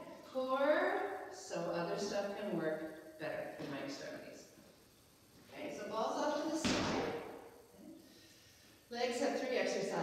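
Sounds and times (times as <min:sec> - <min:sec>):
woman talking: 0:00.3 - 0:04.5, 0:05.5 - 0:07.2, 0:08.9 - 0:10.0
exercise ball thud on rubber floor: 0:06.6 - 0:07.4.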